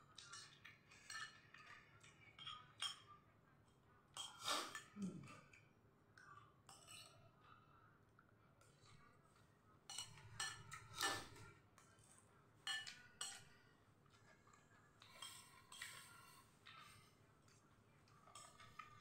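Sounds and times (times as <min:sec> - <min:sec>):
spoon clinking on ceramic bowl: 0:09.9 - 0:11.3, 0:12.6 - 0:13.5.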